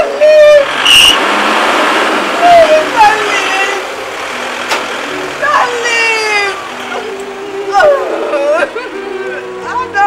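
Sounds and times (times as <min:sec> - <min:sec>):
car engine driving off: 0:00.0 - 0:09.6
woman's voice: 0:02.4 - 0:03.9, 0:05.4 - 0:10.0.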